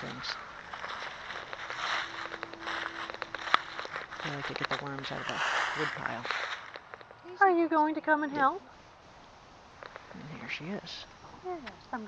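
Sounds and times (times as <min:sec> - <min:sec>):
footsteps: 0:00.0 - 0:07.2
rustling and crackling: 0:00.0 - 0:07.6
faint steady hum: 0:00.0 - 0:12.0.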